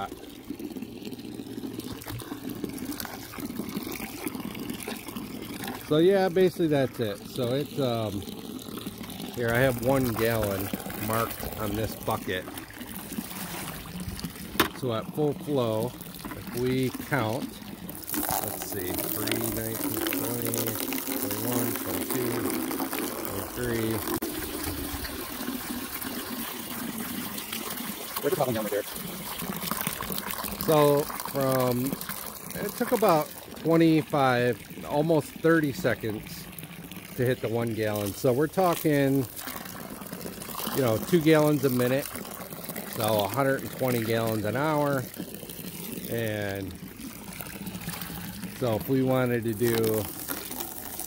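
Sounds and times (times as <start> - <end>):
hose water pouring into pool: 0.0 - 51.0.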